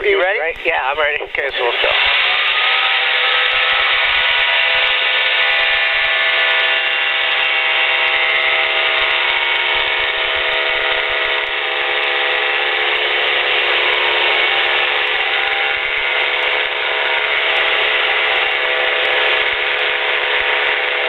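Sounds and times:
aircraft engine and propeller drone: 0.0s - 21.0s.

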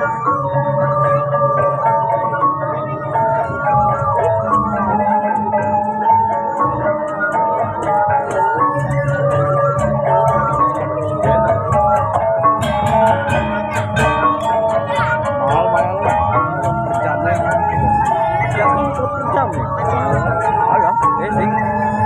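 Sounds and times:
metallophones ringing melody: 0.0s - 22.0s.

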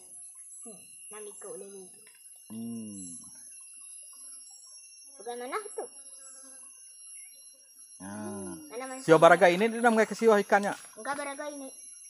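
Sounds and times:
faint scattered sounds: 0.0s - 12.0s
high-pitched insect drone: 0.0s - 12.0s.

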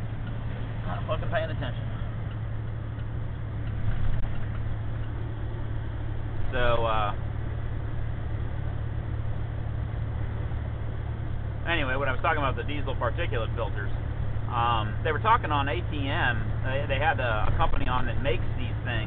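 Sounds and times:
road noise: 0.0s - 19.0s
truck diesel engine droning: 0.0s - 19.0s
voice: 0.9s - 1.8s, 6.5s - 7.2s, 11.7s - 13.9s, 14.5s - 19.0s.

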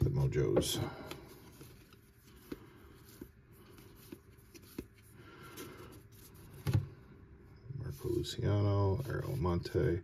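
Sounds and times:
cards rustling and ticking: 0.0s - 6.9s.

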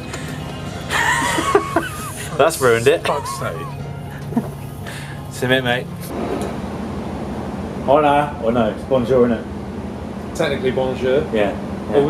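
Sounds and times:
low machinery hum: 0.0s - 12.0s
ventilation rush: 0.0s - 12.0s.

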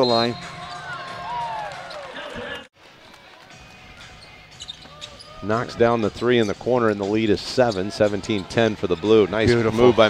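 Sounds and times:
basketball shoes squeaking: 0.0s - 1.1s, 3.9s - 9.6s
arena noise: 0.0s - 10.0s.

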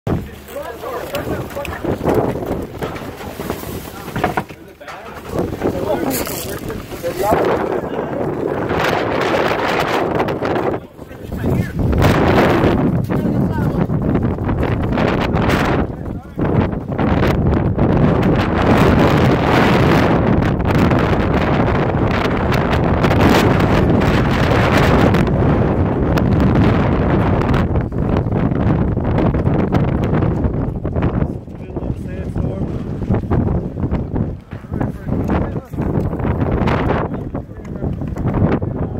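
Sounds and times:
wind buffeting microphone: 0.1s - 38.9s.

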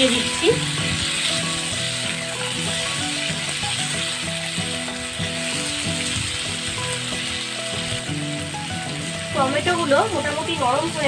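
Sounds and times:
vegetables sizzling in oil: 0.0s - 11.0s
spatula stirring in pan: 0.1s - 9.1s.

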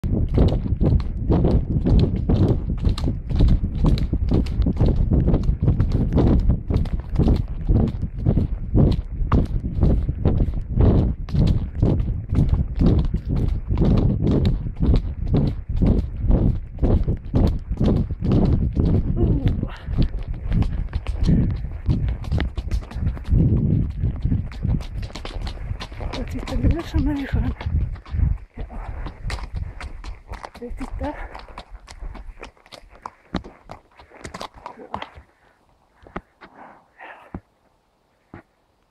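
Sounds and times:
horse hoofbeats on gravel: 0.0s - 35.4s.

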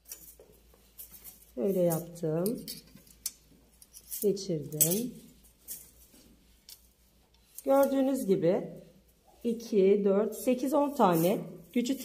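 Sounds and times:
light ticks and rustles: 0.0s - 8.1s.

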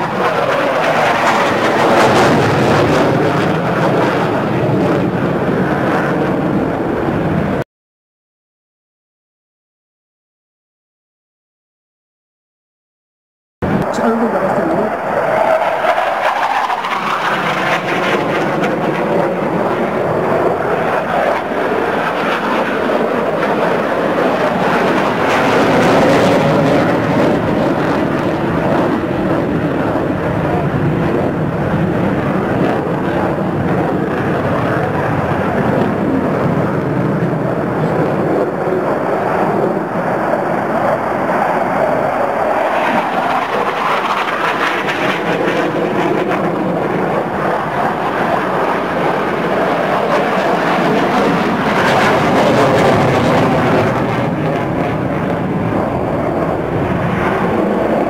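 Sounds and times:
jet engines rushing overhead: 0.0s - 7.6s, 13.6s - 58.0s.

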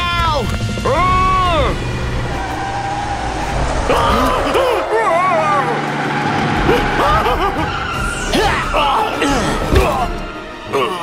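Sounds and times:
frightened cries: 1.0s - 11.0s.

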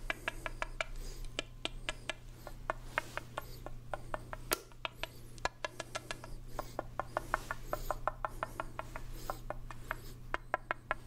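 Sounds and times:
breathy hisses: 0.1s - 1.4s, 5.0s - 10.3s.

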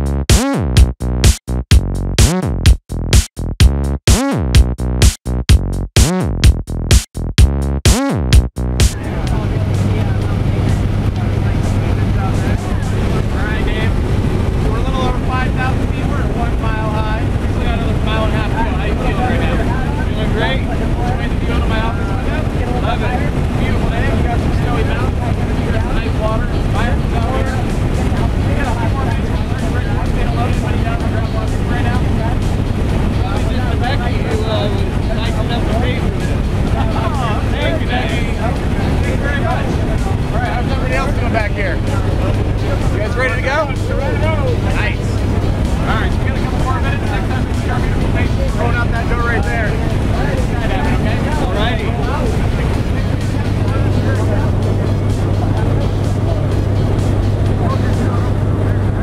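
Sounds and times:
muffled voices talking: 8.8s - 59.0s
wind noise: 8.9s - 59.0s
airplane engine droning: 9.0s - 59.0s.

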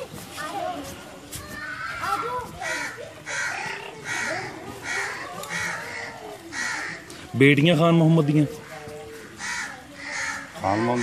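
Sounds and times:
crow harsh calls: 2.6s - 7.2s, 8.5s - 11.0s.

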